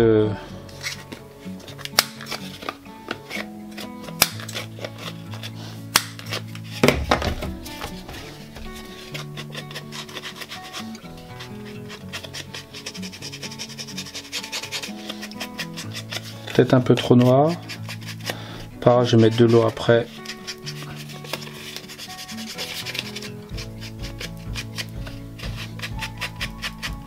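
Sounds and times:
slow background music: 0.0 - 27.0
ink tool rubbing on paper card: 1.7 - 6.8, 7.8 - 27.0.

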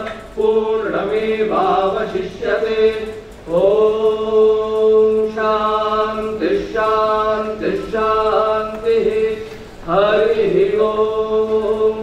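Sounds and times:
young men chanting hymns: 0.0 - 12.0.

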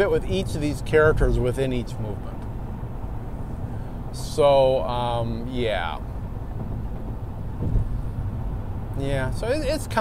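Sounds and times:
vehicle road noise rumble: 0.0 - 10.0
thump: 6.6 - 8.0.

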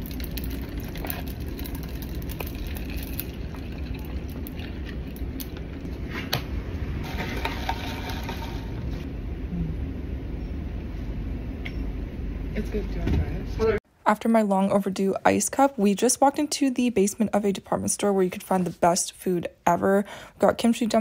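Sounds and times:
drink pouring into cup: 0.0 - 5.9, 7.0 - 9.0
ice crackling: 0.0 - 5.9.

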